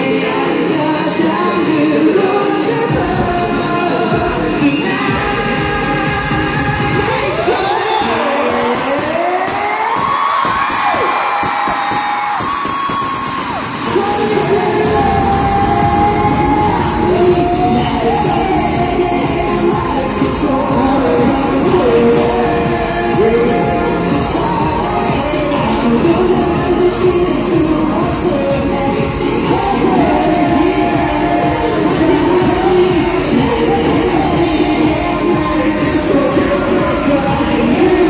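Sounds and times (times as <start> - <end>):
person singing: 0.0 - 10.8, 13.8 - 38.0
live pop song through sound system: 0.0 - 38.0
crowd cheering: 7.0 - 28.8.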